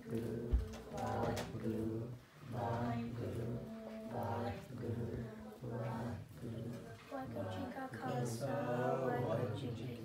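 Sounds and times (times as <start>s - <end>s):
voices singing a hymn: 0.0s - 10.0s.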